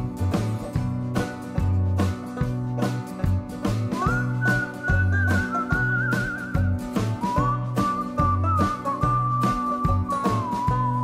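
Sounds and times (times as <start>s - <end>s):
country music with bass and beat: 0.0s - 11.0s
whistled melody: 3.7s - 11.0s.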